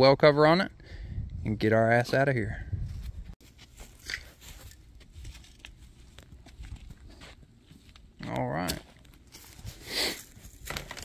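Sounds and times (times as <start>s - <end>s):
footsteps on dirt and grass: 2.1s - 11.0s.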